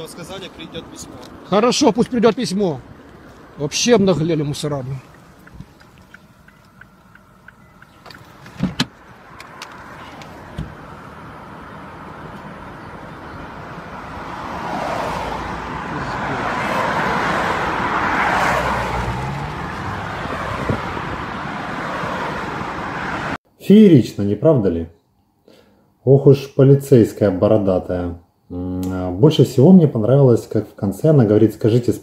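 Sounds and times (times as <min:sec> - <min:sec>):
road traffic rush: 0:00.0 - 0:23.5.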